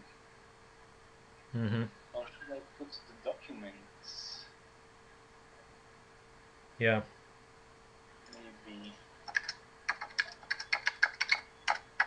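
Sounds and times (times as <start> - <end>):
computer keyboard typing: 9.3 - 12.0.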